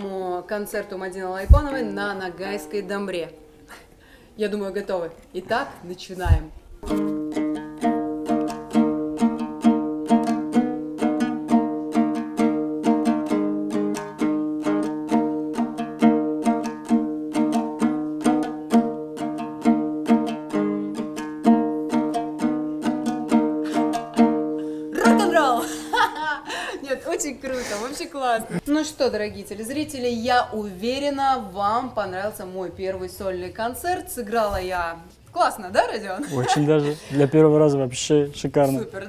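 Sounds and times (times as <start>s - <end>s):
lute strummed: 6.8s - 26.4s.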